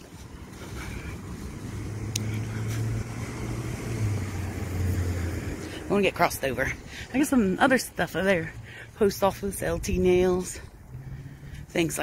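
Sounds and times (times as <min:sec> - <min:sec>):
car driving past: 0:00.4 - 0:06.9, 0:10.9 - 0:11.8.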